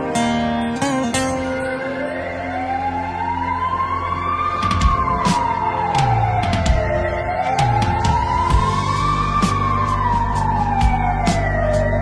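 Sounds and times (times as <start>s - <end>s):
rising siren-like synth tone: 0.8s - 12.0s.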